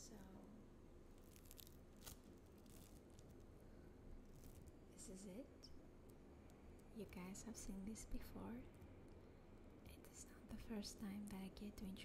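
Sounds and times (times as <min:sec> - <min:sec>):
foam beads crackling: 0:01.1 - 0:05.1.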